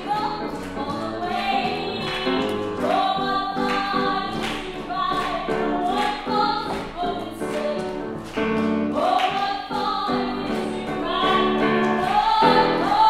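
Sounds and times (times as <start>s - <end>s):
grand piano accompaniment: 0.0s - 13.0s.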